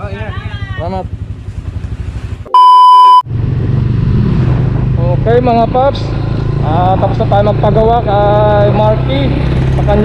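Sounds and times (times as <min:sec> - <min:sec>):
motorcycle engine: 0:00.0 - 0:10.0
electronic beep: 0:02.5 - 0:03.3.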